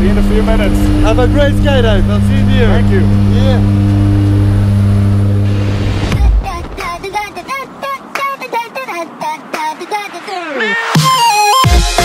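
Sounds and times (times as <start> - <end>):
propeller plane engine drone: 0.0 - 8.2.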